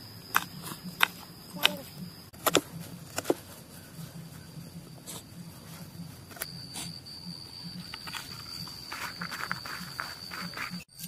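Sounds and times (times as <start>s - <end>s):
high-pitched insect drone: 0.0s - 3.1s, 3.7s - 11.0s.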